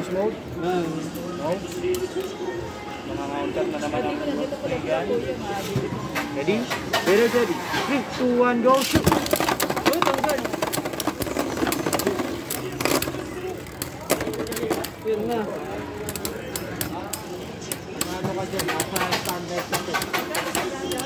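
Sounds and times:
spinning tops scraping whir: 9.2 - 17.5.

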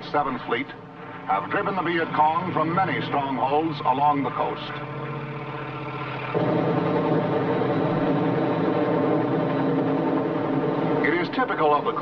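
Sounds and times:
helicopter engine and rotor: 0.3 - 12.0.

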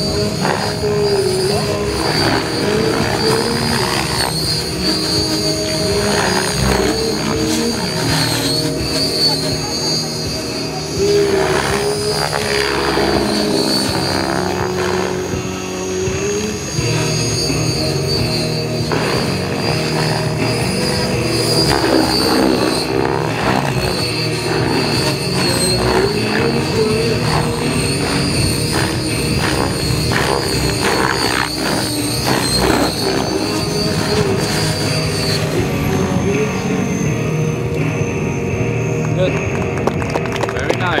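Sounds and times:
model helicopter high whine: 0.0 - 41.0
music: 0.0 - 41.0.

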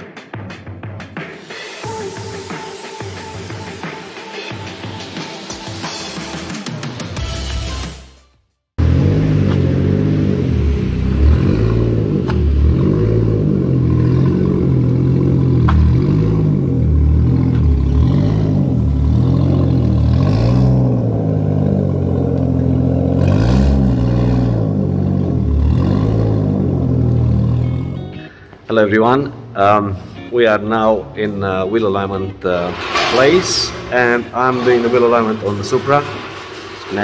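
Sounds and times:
car engine revving: 8.8 - 28.2, 32.6 - 37.0.

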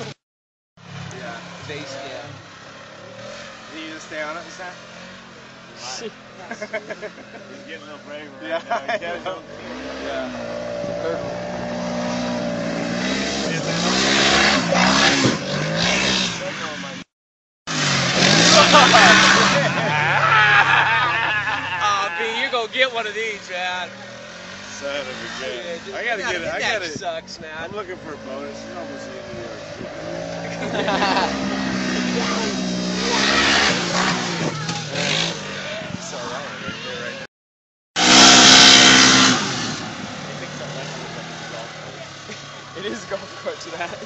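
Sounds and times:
off-road vehicle engine revving: 0.0 - 0.2, 0.8 - 17.1, 17.7 - 37.3, 38.0 - 44.0.

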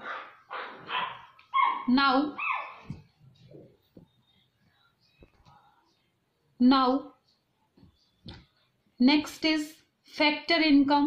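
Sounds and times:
dog barking: 0.0 - 2.9.

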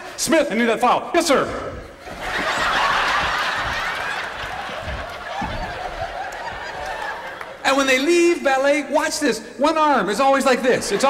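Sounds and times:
audience laughing: 2.0 - 8.1.

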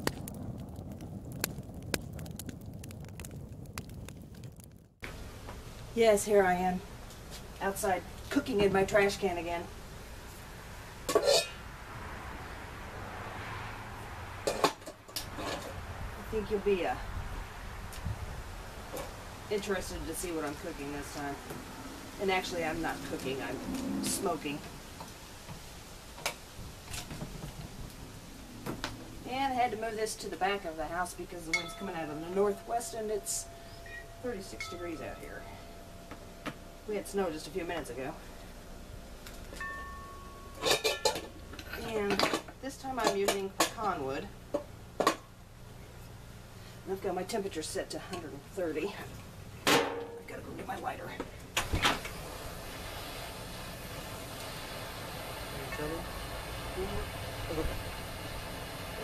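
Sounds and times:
low steady rumble: 0.0 - 11.1, 15.5 - 59.0
ringing metallic tone: 31.4 - 38.6, 39.5 - 41.8.

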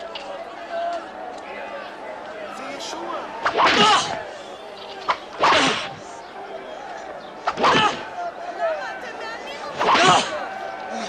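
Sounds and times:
whip cracking: 3.4 - 4.2, 5.0 - 6.1, 7.4 - 8.1, 9.8 - 10.4.

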